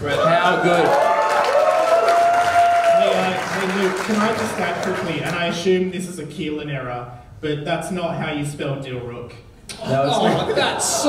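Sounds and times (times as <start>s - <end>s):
audience applauding and cheering: 0.0s - 5.5s.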